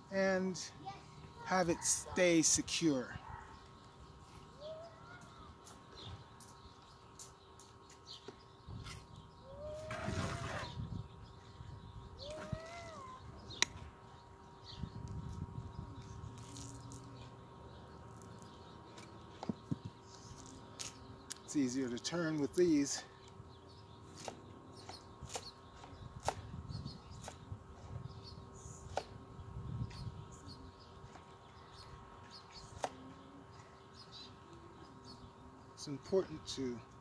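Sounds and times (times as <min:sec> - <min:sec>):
bird calls: 0:00.1 - 0:37.0.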